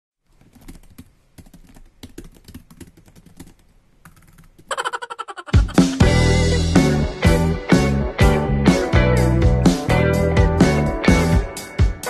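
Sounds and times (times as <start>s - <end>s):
keyboard typing clicks: 0.4s - 4.7s.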